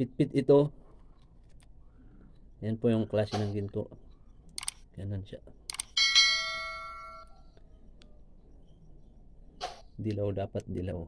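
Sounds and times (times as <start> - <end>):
notification bell ding: 6.0 - 7.3.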